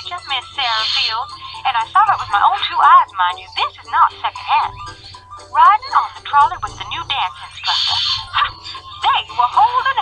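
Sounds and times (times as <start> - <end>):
woman talking over telephone: 0.0 - 4.9, 5.5 - 10.0.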